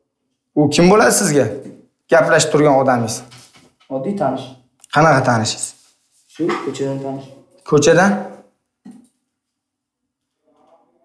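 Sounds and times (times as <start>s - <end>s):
men speaking: 0.6s - 8.5s.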